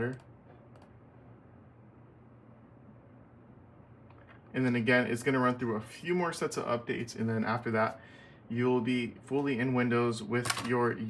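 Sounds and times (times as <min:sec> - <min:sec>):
faint room hiss: 0:00.0 - 0:11.0
computer mouse clicks: 0:00.1 - 0:00.9.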